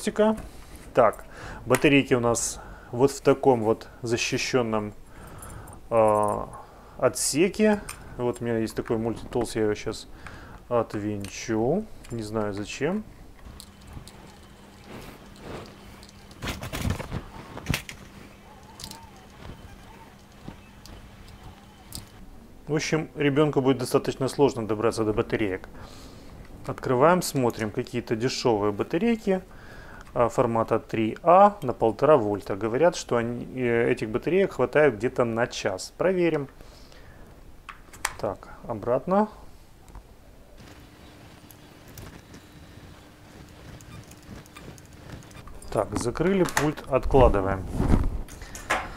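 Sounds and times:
low steady hum: 0.0 - 48.9.

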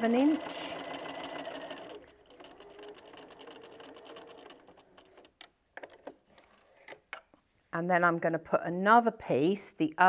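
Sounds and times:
sewing machine stitching: 0.0 - 7.0.

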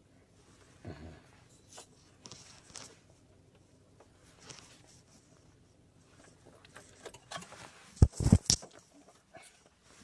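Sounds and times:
faint clicks and rustles: 1.4 - 10.0.

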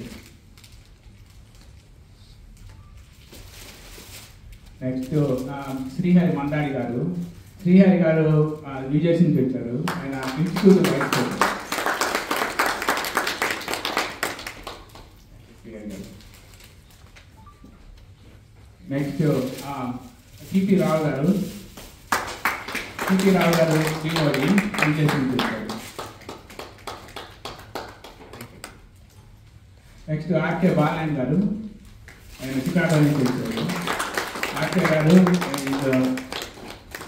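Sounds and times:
audience applauding: 9.9 - 15.2, 22.1 - 28.7, 32.9 - 37.0.

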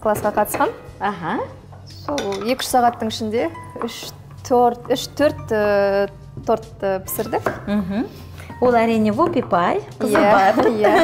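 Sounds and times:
background music: 0.0 - 11.0
cutlery and dishes clinking: 1.8 - 3.1.

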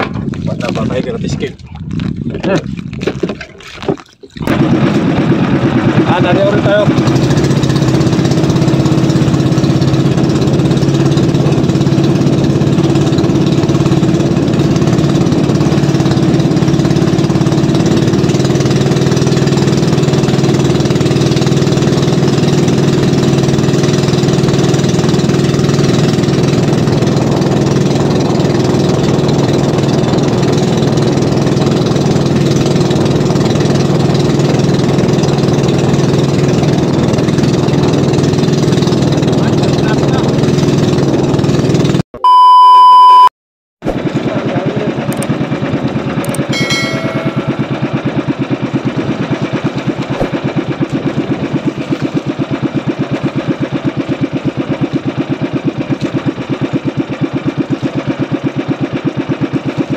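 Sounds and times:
boat engine running steadily: 0.0 - 42.0, 43.8 - 59.9.

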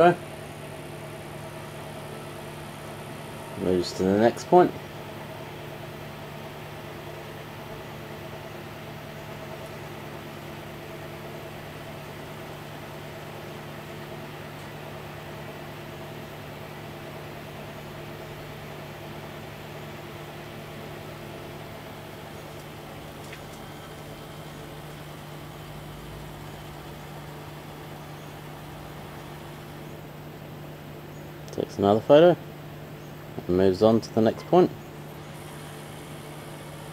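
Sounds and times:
low mechanical hum: 0.0 - 36.9.

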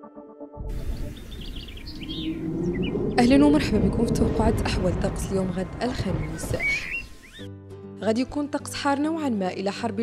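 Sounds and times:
outdoor ambience: 0.7 - 7.4
birds chirping: 0.7 - 7.5.

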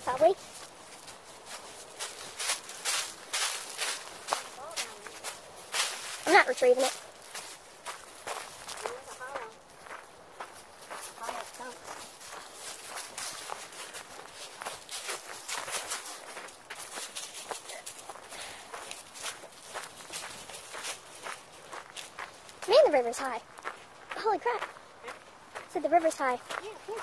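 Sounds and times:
footsteps crunching dry leaves: 0.1 - 25.7.

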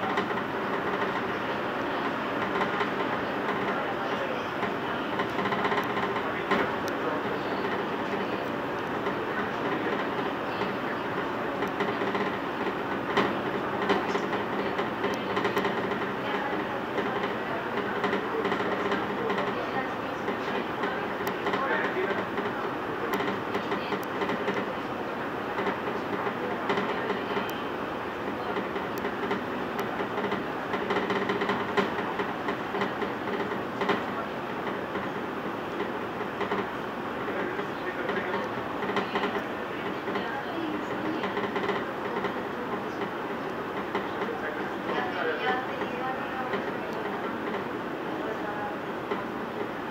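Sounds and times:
train wheels rumbling on rail: 0.0 - 49.9.

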